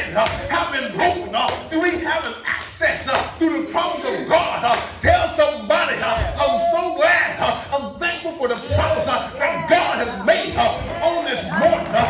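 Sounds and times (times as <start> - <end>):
man preaching rhythmically: 0.0 - 12.0.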